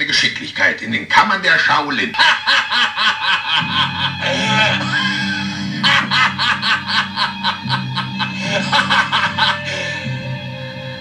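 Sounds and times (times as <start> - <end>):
sampled laughter: 2.2 - 10.0
music with low bass line: 3.6 - 11.0.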